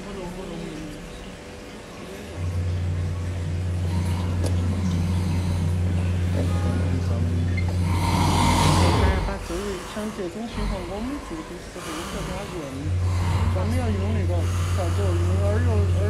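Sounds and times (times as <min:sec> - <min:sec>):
electric device buzzing: 0:02.5 - 0:16.0.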